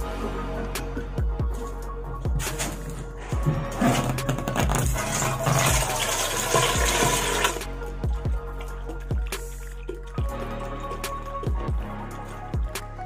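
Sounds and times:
background music with steady beat: 0:00.0 - 0:13.0
liquid pouring splash: 0:05.0 - 0:07.7.

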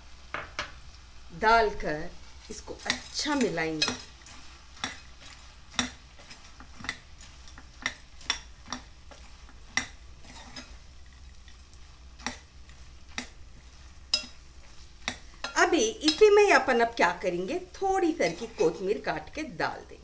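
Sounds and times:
spatula scraping a pot: 0:02.5 - 0:16.4, 0:18.2 - 0:18.8
spatula clinking against pot: 0:02.8 - 0:04.2, 0:14.1 - 0:14.4.

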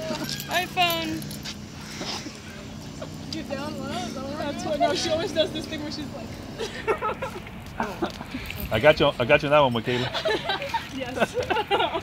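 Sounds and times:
group chatter and laughter: 0:00.0 - 0:00.6, 0:01.7 - 0:09.0, 0:09.7 - 0:12.0.

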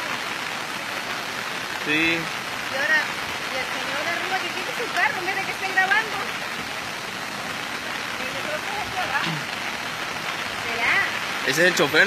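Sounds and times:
rain falling: 0:00.0 - 0:12.0.

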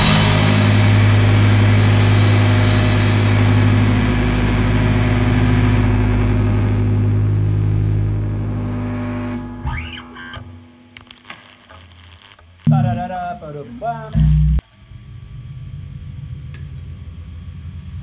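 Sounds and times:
distorted guitars holding a chord: 0:00.0 - 0:16.4
string and amplifier noises: 0:00.0 - 0:17.6.

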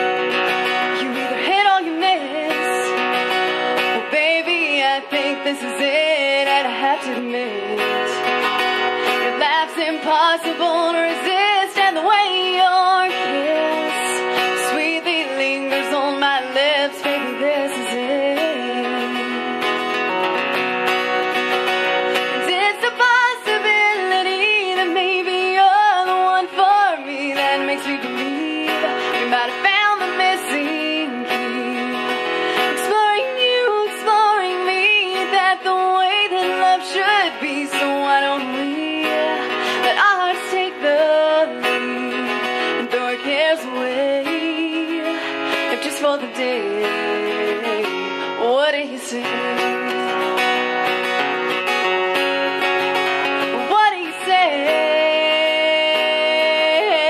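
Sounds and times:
strummed acoustic guitar: 0:00.0 - 0:57.0
woman singing: 0:00.0 - 0:57.0.

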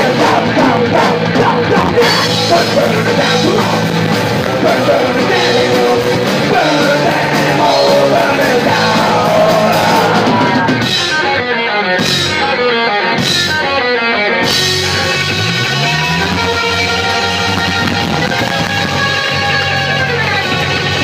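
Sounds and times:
person singing: 0:00.0 - 0:11.8
punk rock band playing: 0:00.0 - 0:21.0.

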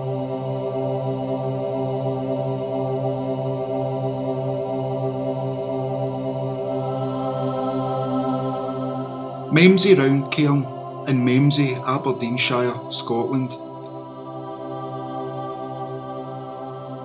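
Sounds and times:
low chant-like drone: 0:00.0 - 0:17.0.

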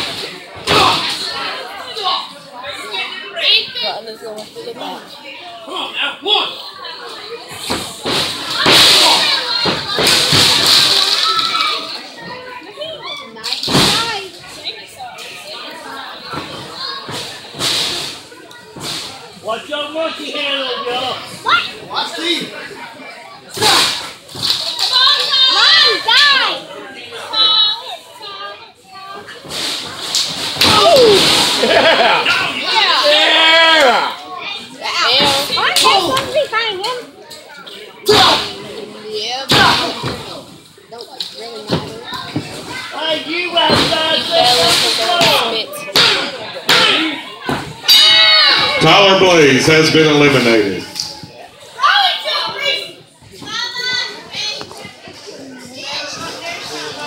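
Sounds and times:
crowd shouting and cheering: 0:05.6 - 0:13.8, 0:23.5 - 0:28.1, 0:30.6 - 0:36.4, 0:42.1 - 0:57.0
crowd yelling and cheering: 0:30.6 - 0:34.7.

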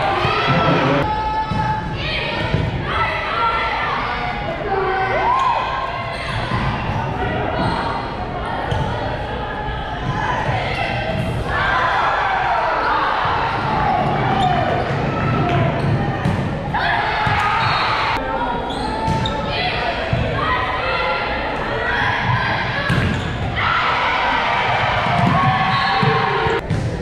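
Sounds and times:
voices in echoing gym: 0:00.0 - 0:27.0.

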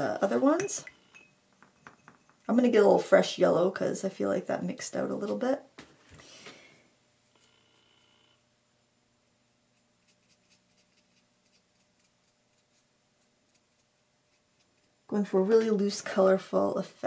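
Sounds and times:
wet brush dabbing on paper: 0:09.7 - 0:15.8.

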